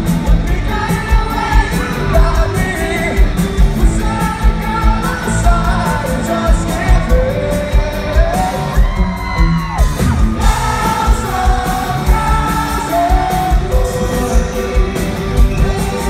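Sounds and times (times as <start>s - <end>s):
live pop-rock band with singer: 0.0s - 16.0s
steady kick-drum beat: 0.0s - 16.0s
fans yelling along: 0.4s - 16.0s.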